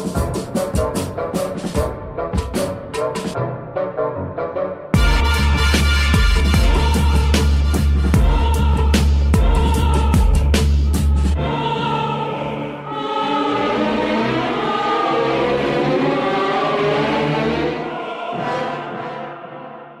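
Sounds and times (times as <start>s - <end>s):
choir-like vocal sample: 6.4s - 20.0s.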